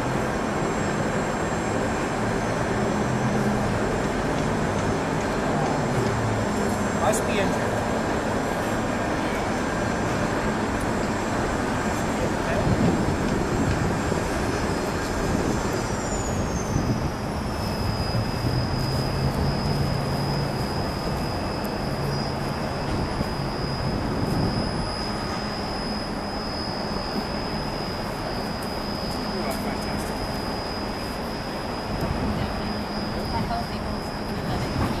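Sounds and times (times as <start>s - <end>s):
machine running with high whine: 0.0s - 35.0s.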